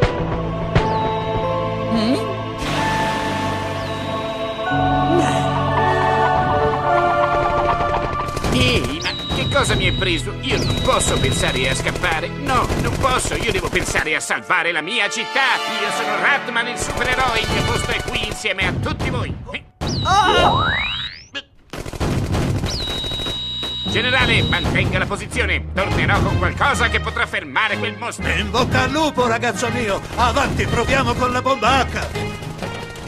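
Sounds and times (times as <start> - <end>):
cartoon machine-gun fire: 7.8 - 14.0, 16.8 - 18.5, 21.7 - 23.6.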